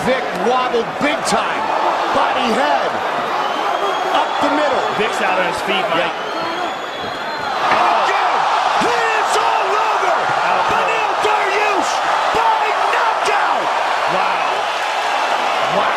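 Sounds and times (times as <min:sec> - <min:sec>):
crowd cheering: 0:00.0 - 0:15.9
voices shouting: 0:01.4 - 0:15.9.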